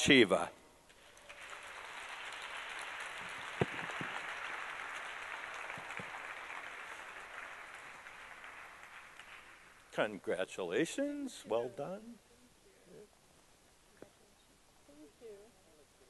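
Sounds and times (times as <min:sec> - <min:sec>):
audience applause: 0:01.0 - 0:09.8.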